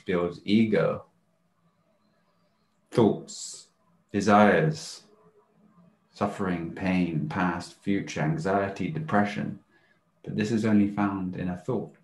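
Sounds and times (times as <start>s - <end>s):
man speaking: 0.0s - 1.0s, 2.9s - 5.1s, 6.2s - 9.6s, 10.3s - 12.0s
faint low hum: 0.0s - 12.0s.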